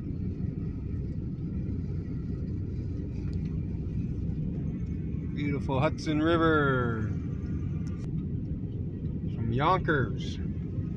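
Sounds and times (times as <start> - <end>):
steady low rumble: 0.0 - 10.9.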